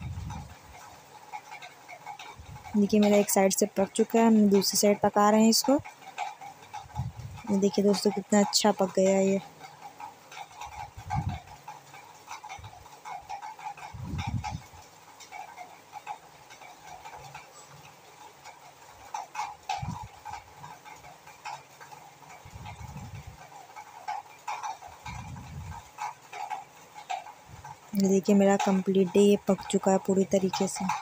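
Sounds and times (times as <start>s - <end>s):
chicken frying in oil: 0.0s - 31.0s.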